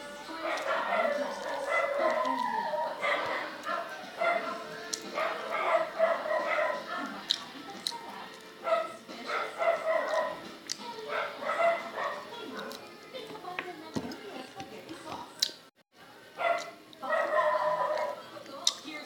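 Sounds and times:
small dog yapping: 0:00.5 - 0:04.6, 0:05.2 - 0:07.2, 0:08.7 - 0:10.4, 0:11.1 - 0:12.8.

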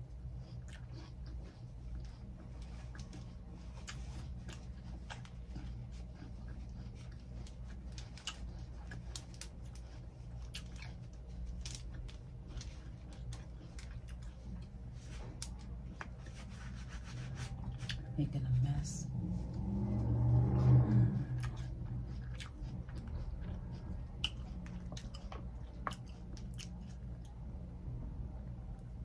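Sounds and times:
chewing juicy fruit: 0:00.0 - 0:29.0
steady low hum: 0:00.0 - 0:29.0.

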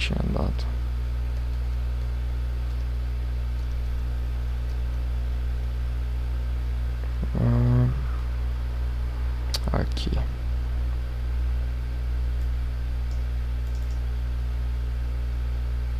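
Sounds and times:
low electrical hum: 0:00.0 - 0:15.9
man humming hmm: 0:07.1 - 0:08.4.

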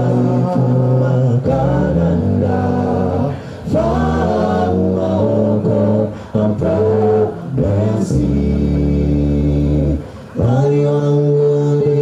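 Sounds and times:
male a cappella harmony singing: 0:00.0 - 0:12.0.

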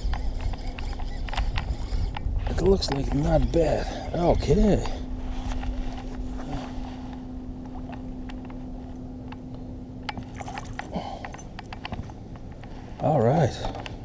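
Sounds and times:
fishing reel cranking hum: 0:00.0 - 0:12.0.

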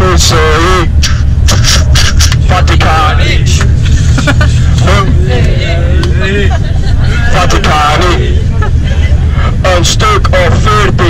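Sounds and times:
bus engine rumble from inside: 0:00.0 - 0:11.0
passengers chatting: 0:00.0 - 0:11.0.

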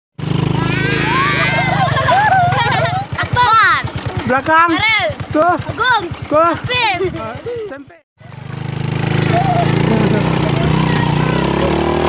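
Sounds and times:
small motorcycle engine: 0:00.2 - 0:12.0
children calling out: 0:00.5 - 0:04.0, 0:08.5 - 0:11.7.

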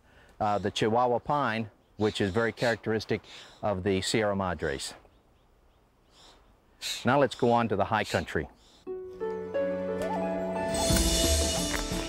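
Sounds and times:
faint breath: 0:00.0 - 0:00.4.

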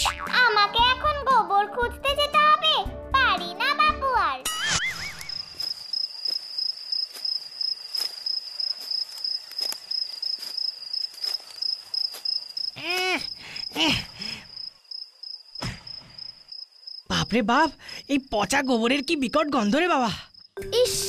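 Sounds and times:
crickets chirping: 0:04.6 - 0:20.6
footsteps: 0:05.1 - 0:13.3
boy grunting with effort: 0:12.8 - 0:14.2.

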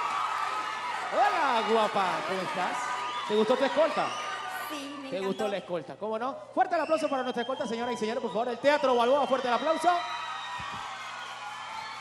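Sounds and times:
audience applause and cheering: 0:00.0 - 0:04.7, 0:07.6 - 0:12.0.

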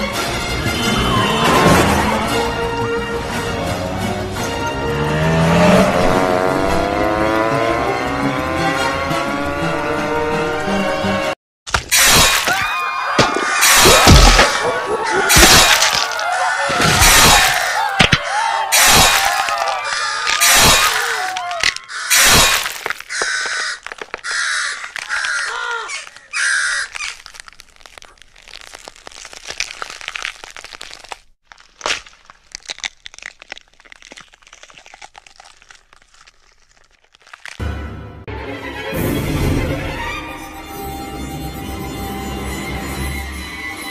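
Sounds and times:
cracking and smashing bursts: 0:11.7 - 0:37.6
harsh caws: 0:15.9 - 0:27.2
faint crackles: 0:22.6 - 0:37.6.

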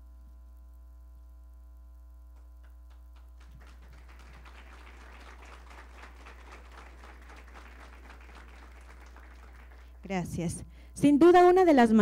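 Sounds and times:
electrical mains hum: 0:00.0 - 0:12.0
audience applauding: 0:02.6 - 0:10.1.

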